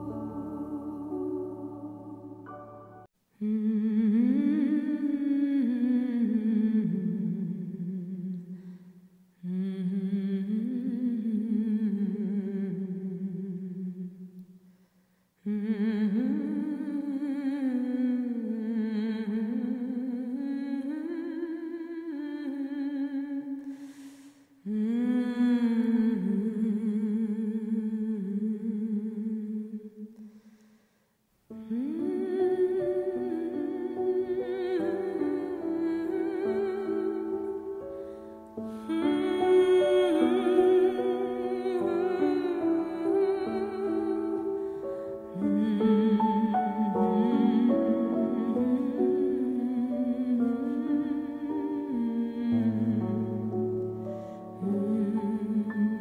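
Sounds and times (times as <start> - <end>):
person humming a melody: 0.0 - 8.6, 9.4 - 14.4, 31.5 - 56.0
short breath: 8.6 - 9.3, 14.6 - 15.4, 23.6 - 24.6, 30.2 - 31.3, 54.0 - 54.6.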